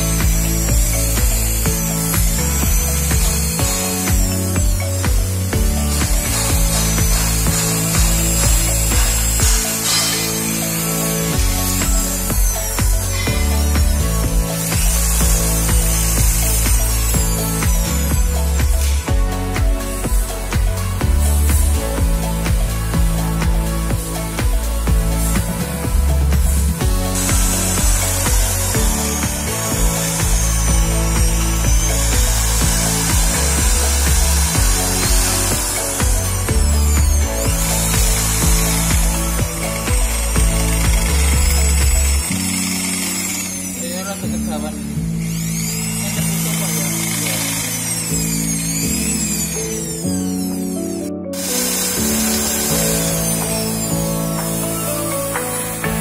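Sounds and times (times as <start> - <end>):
background music: 0.0 - 56.0
electric drill boring into metal: 0.0 - 56.0.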